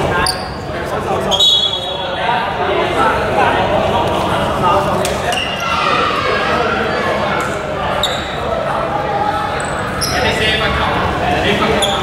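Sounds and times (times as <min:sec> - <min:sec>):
indistinct voices echoing: 0:00.0 - 0:12.0.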